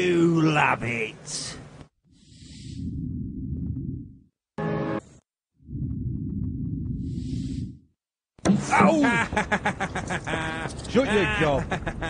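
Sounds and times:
person laughing loudly: 8.8s - 12.0s.

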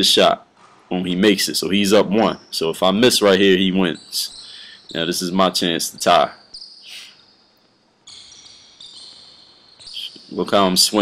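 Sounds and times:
sneakers squeaking on gym floor: 0.6s - 1.2s, 3.2s - 11.0s.

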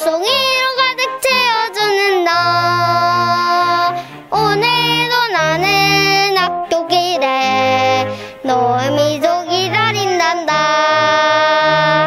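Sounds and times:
child singing: 0.0s - 12.0s
instrumental accompaniment: 0.0s - 12.0s.

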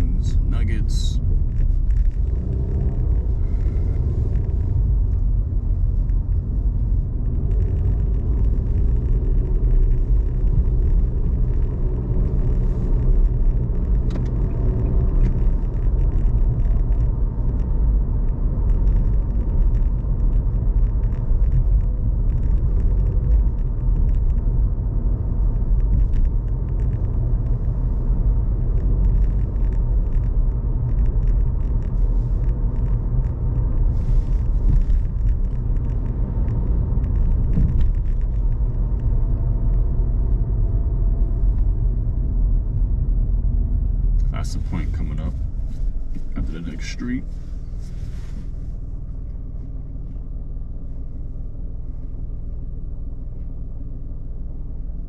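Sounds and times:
car interior road rumble: 0.0s - 55.0s.

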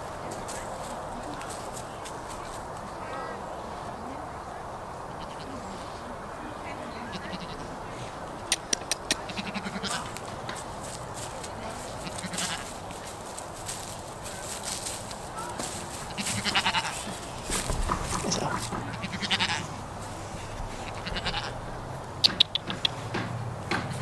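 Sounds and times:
goat bleating: 5.2s - 5.6s, 7.1s - 7.7s, 9.3s - 10.2s, 12.0s - 12.7s, 15.4s - 17.2s, 18.0s - 19.8s, 20.8s - 21.6s
quick sharp clicks: 8.4s - 9.2s, 22.2s - 23.0s.

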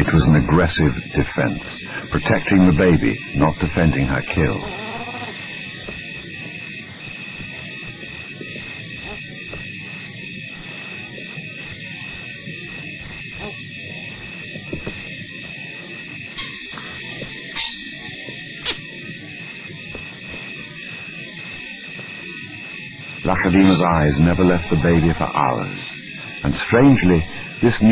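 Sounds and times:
steady high-pitched tones: 0.0s - 27.9s
short high calls: 23.4s - 25.3s.

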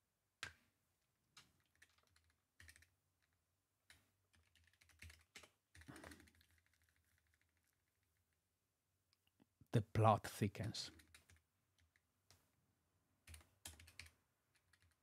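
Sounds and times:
computer keyboard typing: 1.4s - 8.0s, 10.9s - 12.0s, 13.2s - 15.0s.

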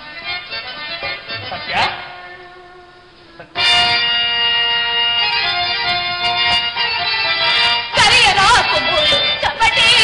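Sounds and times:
harmonium playing held notes: 0.0s - 10.0s.

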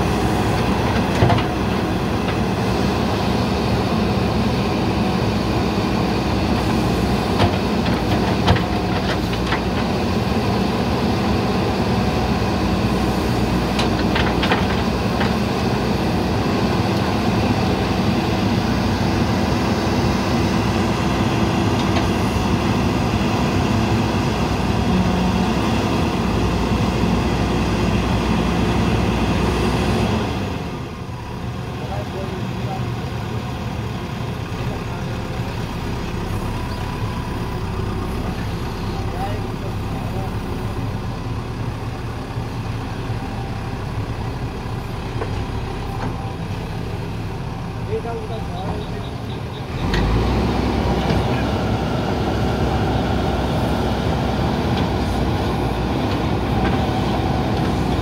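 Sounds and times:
diesel engine under load: 0.0s - 58.0s.

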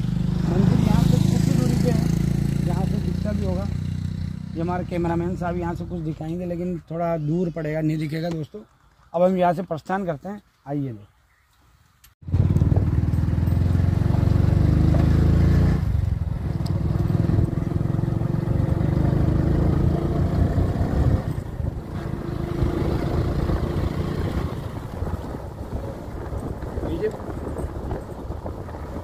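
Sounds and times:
motorcycle engine running: 0.0s - 6.1s, 12.2s - 29.0s.

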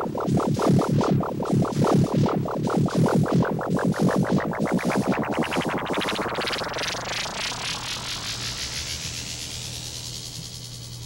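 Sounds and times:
synthesizer sweep: 0.0s - 11.0s.

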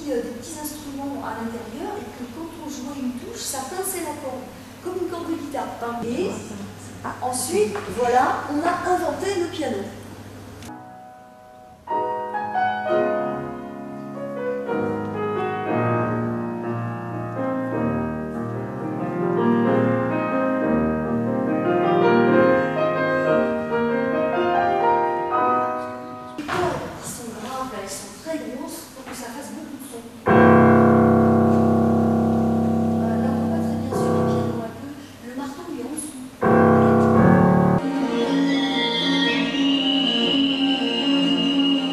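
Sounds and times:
classical piano music: 10.7s - 26.4s, 30.2s - 35.0s, 36.4s - 37.8s.

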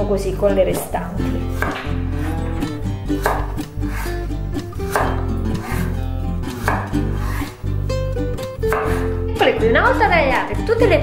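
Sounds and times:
background music: 0.0s - 11.0s
knife cutting on cutting board: 1.5s - 7.6s, 8.6s - 9.1s.

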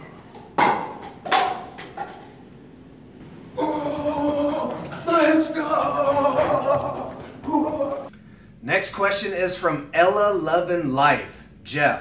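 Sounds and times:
man shouting call: 3.6s - 8.1s.

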